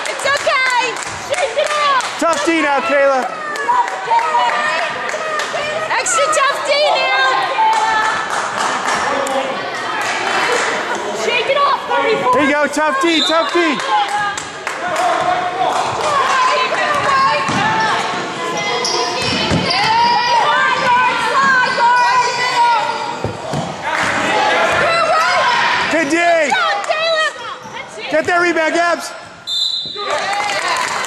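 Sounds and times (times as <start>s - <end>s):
voices and shouts: 0.0s - 31.0s.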